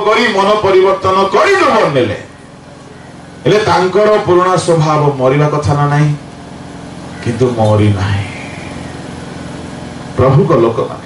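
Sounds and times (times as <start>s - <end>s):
motor humming with fast pulse: 0.0s - 11.0s.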